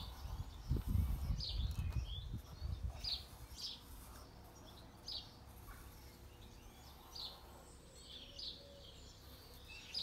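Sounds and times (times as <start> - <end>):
bird chirping: 0.0 - 10.0.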